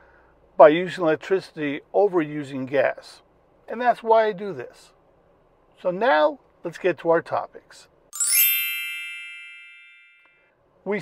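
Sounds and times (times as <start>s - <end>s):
bright chime: 8.2s - 10.4s.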